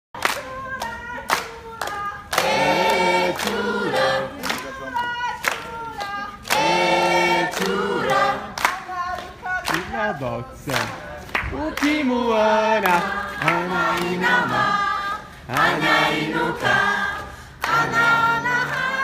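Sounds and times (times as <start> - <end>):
hand claps: 0.2 - 6.7, 7.4 - 10.0, 10.7 - 12.0, 12.8 - 14.6
a cappella choir singing: 0.2 - 19.0.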